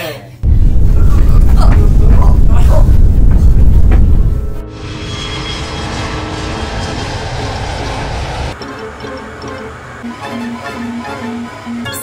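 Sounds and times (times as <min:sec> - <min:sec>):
jet airliner engine noise: 0:00.4 - 0:08.6
loud low rumble: 0:00.4 - 0:08.6
music: 0:04.2 - 0:12.0.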